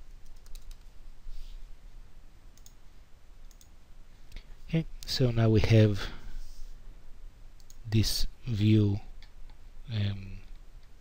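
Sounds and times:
computer mouse clicks: 0.2s - 0.9s, 2.6s - 2.8s, 3.4s - 3.7s, 7.6s - 7.8s.

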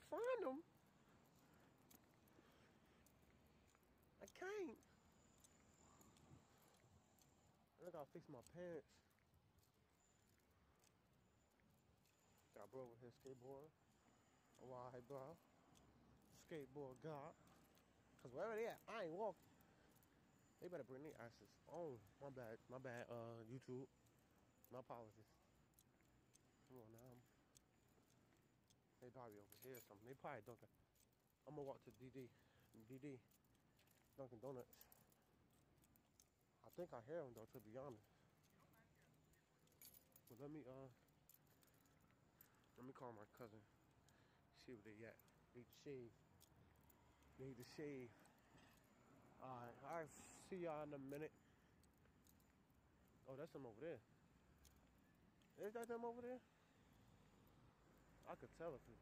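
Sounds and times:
faint ticks: 0.0s - 59.0s.

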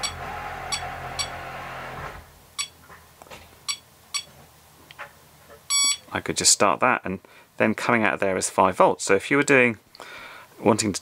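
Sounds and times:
charger key beeps: 0.0s - 1.4s, 3.7s - 4.3s, 5.7s - 6.1s.

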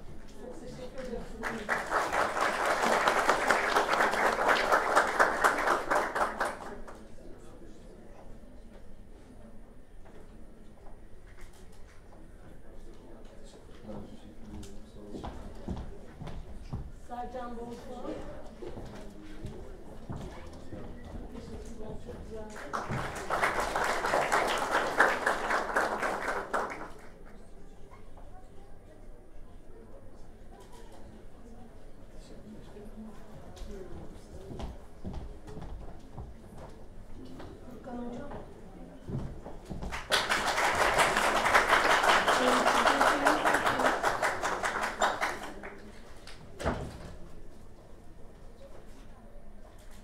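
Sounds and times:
audience applauding: 1.4s - 7.0s, 22.6s - 27.2s, 39.9s - 45.9s.

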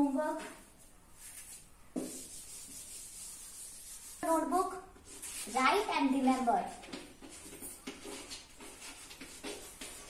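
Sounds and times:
eraser rubbing on chalkboard: 1.2s - 10.0s.

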